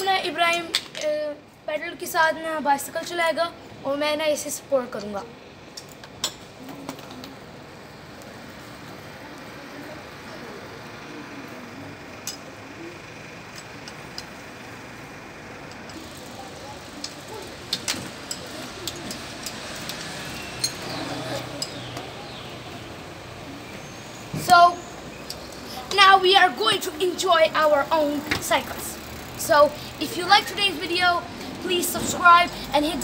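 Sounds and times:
outdoor background noise: 0:00.0 - 0:33.0
bicycles rolling over cobblestones: 0:05.8 - 0:33.0
faint voices: 0:06.4 - 0:33.0.

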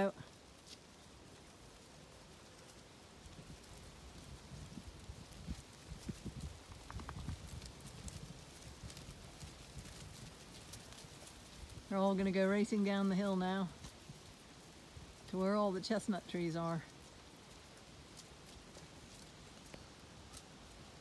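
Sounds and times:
sheep hooves thudding on grass: 0:00.0 - 0:21.0.

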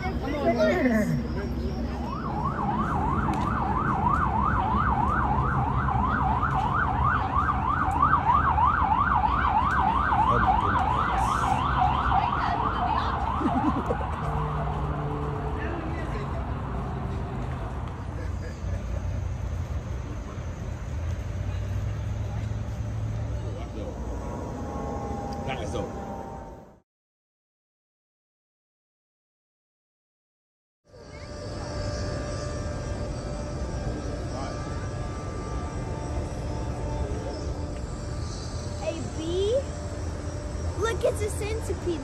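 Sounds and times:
siren yelping: 0:00.0 - 0:15.2, 0:23.8 - 0:26.8.

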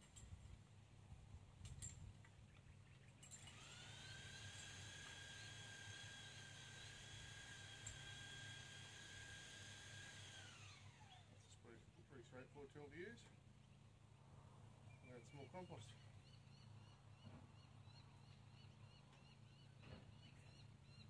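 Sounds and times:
small motor whine: 0:03.2 - 0:11.4.

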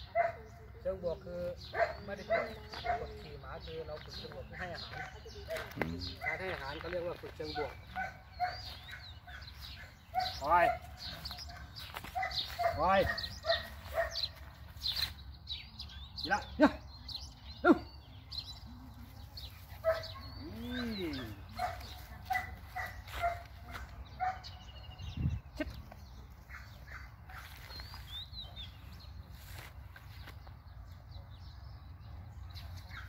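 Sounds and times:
dog barking: 0:00.0 - 0:00.6, 0:01.7 - 0:03.2, 0:04.6 - 0:06.6, 0:07.5 - 0:14.4, 0:19.8 - 0:24.6.

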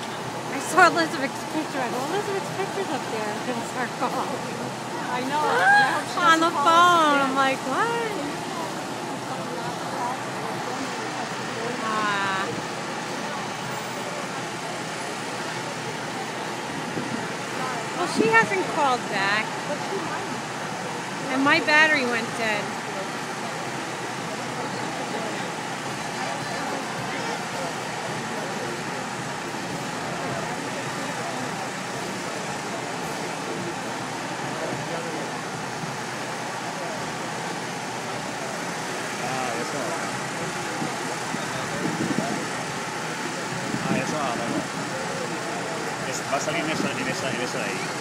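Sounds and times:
indistinct crowd chatter: 0:00.0 - 0:48.0
traffic noise: 0:00.0 - 0:48.0.

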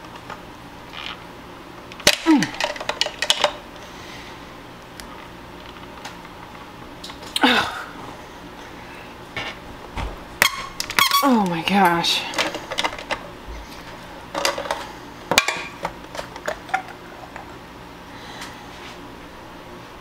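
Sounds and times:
plastic parts squeaking and clicking: 0:10.4 - 0:11.4.

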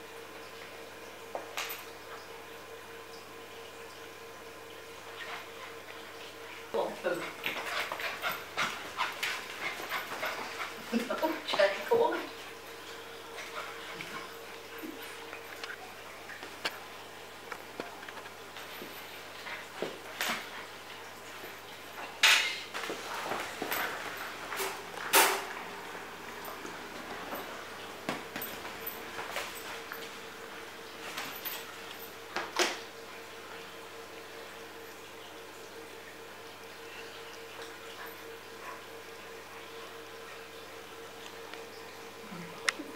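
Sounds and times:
faint steady hum: 0:00.0 - 0:42.9.

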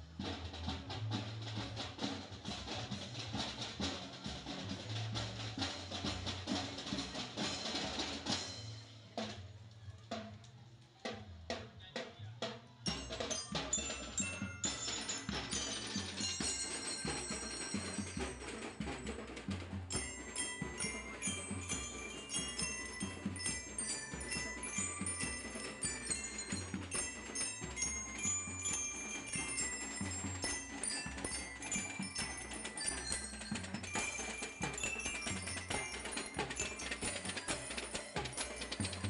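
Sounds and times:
steady drumbeat: 0:00.0 - 0:10.4, 0:11.0 - 0:39.0
bell lyres playing melody: 0:12.9 - 0:39.0.

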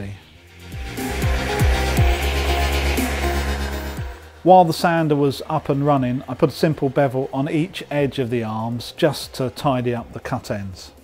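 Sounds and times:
belt sander motor hum: 0:00.4 - 0:10.2
sanding belt grinding timber: 0:00.4 - 0:10.5.

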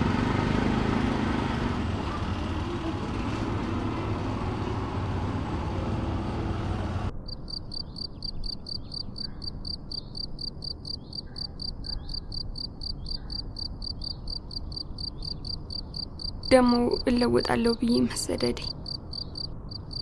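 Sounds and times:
crickets chirping: 0:07.2 - 0:17.1, 0:18.7 - 0:20.0.

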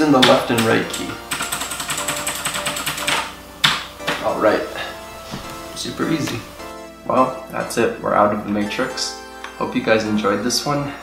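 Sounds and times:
keyboard keys clicking: 0:00.2 - 0:04.2.

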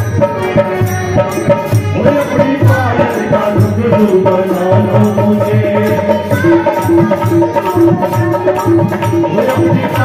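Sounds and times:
group singing into microphones: 0:00.0 - 0:10.0
rhythmic percussion: 0:00.0 - 0:10.0.

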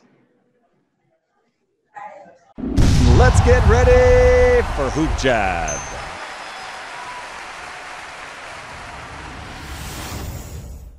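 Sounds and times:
low rumble: 0:02.6 - 0:04.8.

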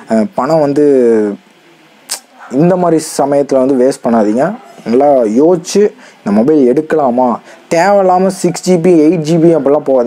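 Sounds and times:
man talking: 0:00.0 - 0:01.4, 0:02.1 - 0:10.0
sharp click: 0:01.5 - 0:02.3.

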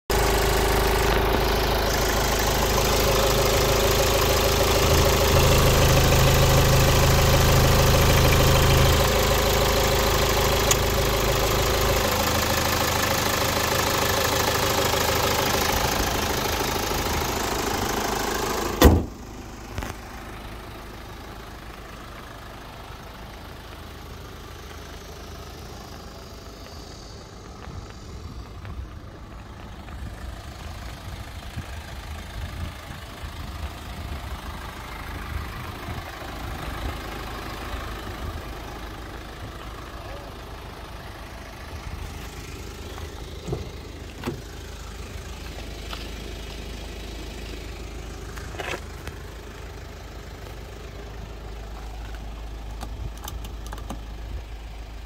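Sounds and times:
diesel engine idling: 0:00.0 - 0:55.0
sharp thump: 0:18.8 - 0:19.2.

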